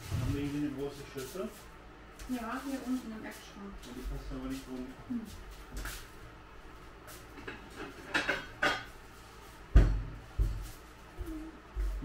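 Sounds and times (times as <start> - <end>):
dishes clinking: 7.4 - 8.9
dishes knocking: 7.4 - 8.9
heavy thump: 9.7 - 10.6.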